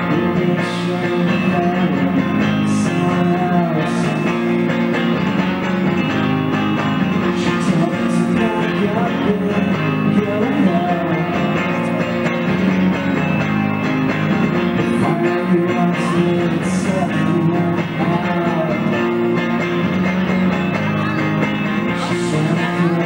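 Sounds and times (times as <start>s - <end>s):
person singing lead vocal: 0.0s - 12.8s, 14.5s - 20.0s, 20.7s - 23.0s
live rock band playing: 0.0s - 23.0s.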